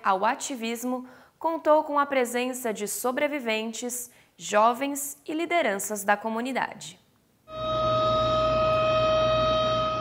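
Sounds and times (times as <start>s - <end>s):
siren steady tone: 7.5s - 10.0s.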